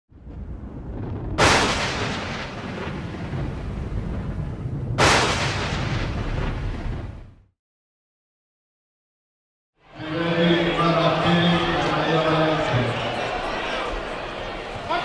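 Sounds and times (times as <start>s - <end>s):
booming explosion-like hits: 0.2s - 7.5s.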